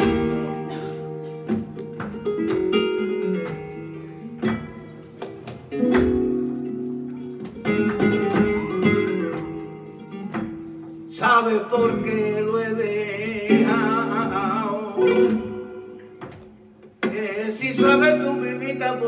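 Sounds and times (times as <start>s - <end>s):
flamenco guitar playing: 0.0s - 19.0s.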